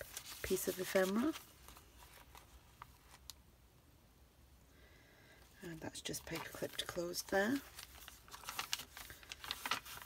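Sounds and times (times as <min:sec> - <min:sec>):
paper pages rustling: 0:00.0 - 0:03.4, 0:06.0 - 0:10.0.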